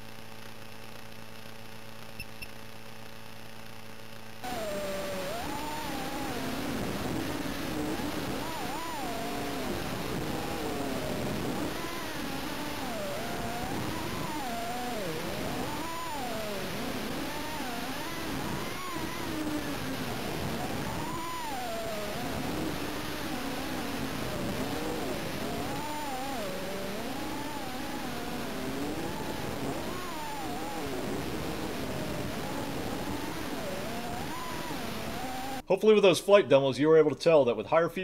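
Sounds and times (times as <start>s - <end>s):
drone motors whining: 4.4s - 35.6s.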